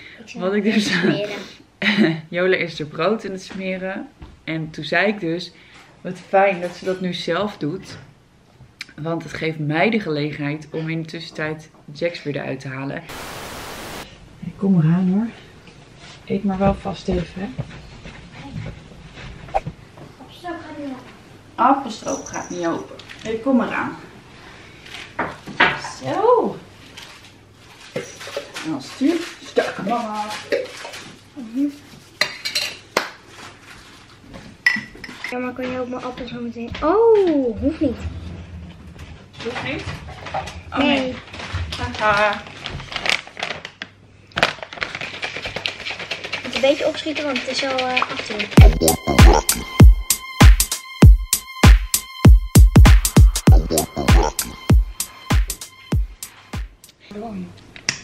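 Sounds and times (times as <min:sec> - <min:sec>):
dishes and cutlery clinking: 0:32.2 - 0:32.9, 0:34.6 - 0:35.4
baby short sharp sound: 0:48.6 - 0:49.8
baby fussing: 0:48.6 - 0:50.2, 0:53.3 - 0:55.7.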